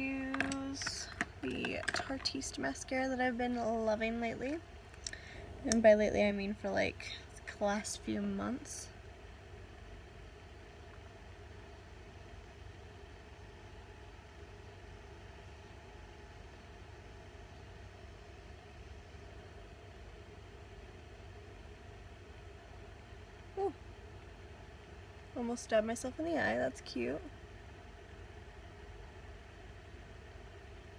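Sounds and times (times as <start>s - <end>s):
low background hum with hiss: 0.0s - 30.9s.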